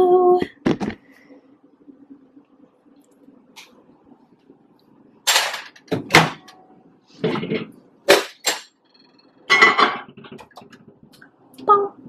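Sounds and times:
ceramic bowl clattering on glass: 0:09.5 - 0:10.2.

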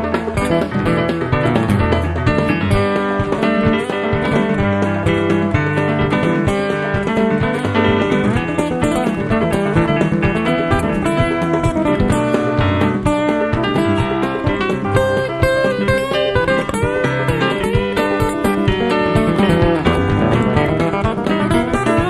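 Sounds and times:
bass: 0:00.0 - 0:22.0
guitar: 0:00.0 - 0:22.0
instrumental band music: 0:00.0 - 0:22.0.

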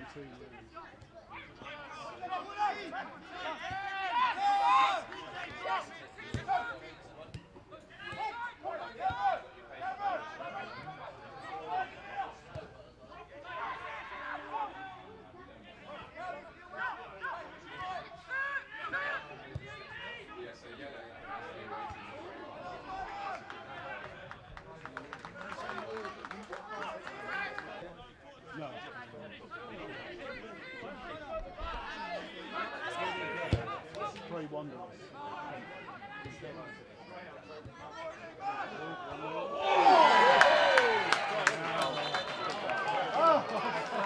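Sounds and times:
players and spectators calling out: 0:00.0 - 0:44.0.

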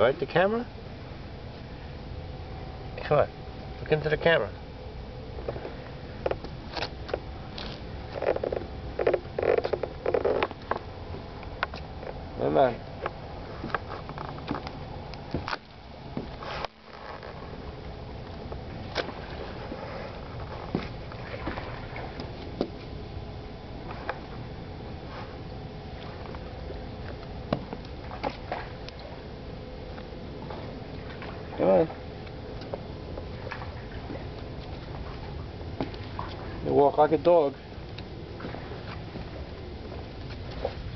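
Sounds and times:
footsteps on wooden planks: 0:13.6 - 0:15.6, 0:20.4 - 0:21.6.

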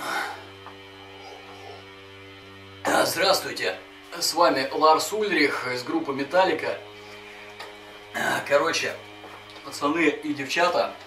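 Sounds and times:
buzzy electrical hum: 0:00.0 - 0:11.0.

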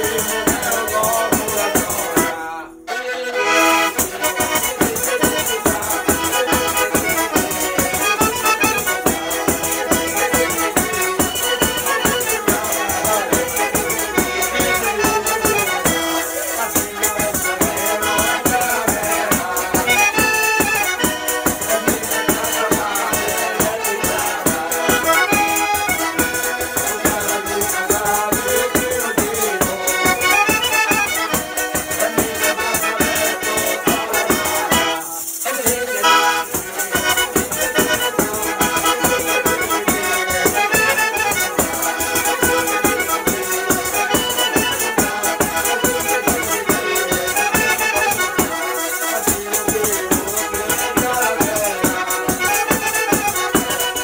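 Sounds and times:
tambourine beating rhythm: 0:00.0 - 0:02.4, 0:03.5 - 0:54.0
button accordion: 0:00.0 - 0:54.0
man singing: 0:00.0 - 0:54.0.

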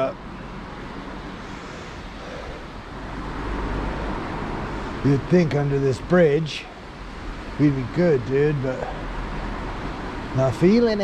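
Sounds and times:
traffic rumble and hiss: 0:00.0 - 0:11.0
vehicle passing over steel bridge: 0:00.0 - 0:11.0.

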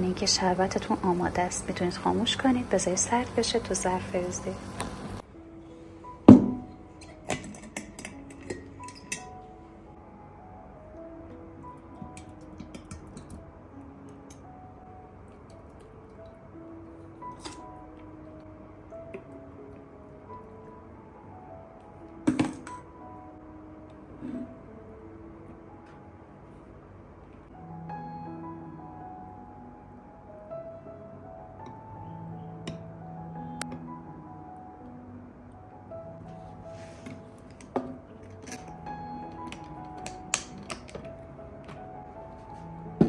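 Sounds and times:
gentle instrumental music: 0:00.0 - 0:43.0.

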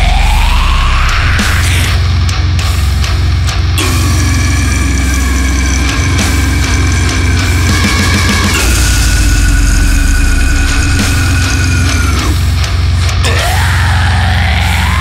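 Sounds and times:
distorted electric guitar: 0:00.0 - 0:15.0
drums: 0:00.0 - 0:15.0.

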